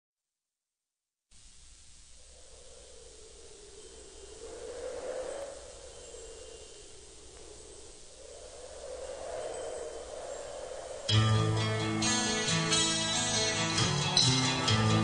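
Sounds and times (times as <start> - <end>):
wind-like hiss: 1.3 - 15.0.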